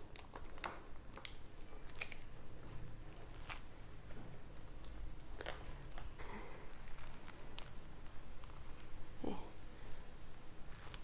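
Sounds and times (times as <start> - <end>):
soft tearing of fruit: 0.0 - 11.0.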